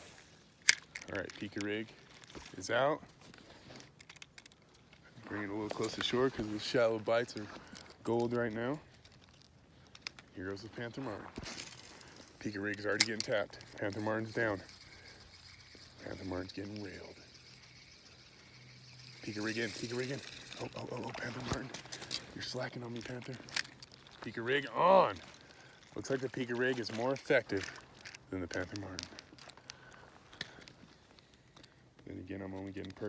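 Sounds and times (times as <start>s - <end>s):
low hum: 8.8s - 27.0s
fishing reel clicking: 11.8s - 24.0s, 25.3s - 29.5s.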